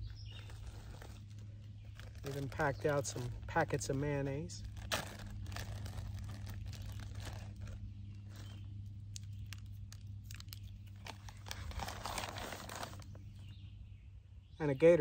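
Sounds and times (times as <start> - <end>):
paper and plastic crinkling: 0.3 - 13.4.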